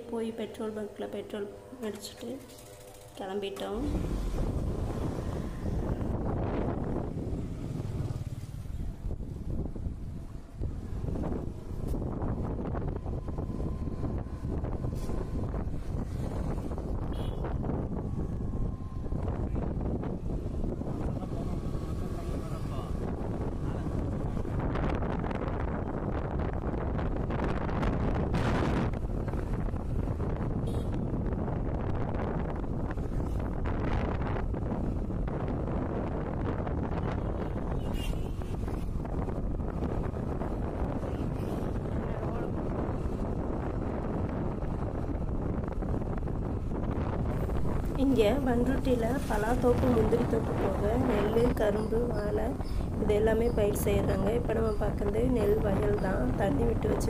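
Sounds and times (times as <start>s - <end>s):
motorbike running: 1.4s - 57.0s
wind buffeting microphone: 2.7s - 57.0s.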